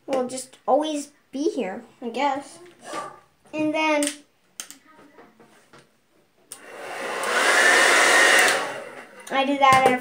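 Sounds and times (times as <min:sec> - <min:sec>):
hair dryer blowing and whining: 0:06.5 - 0:09.3.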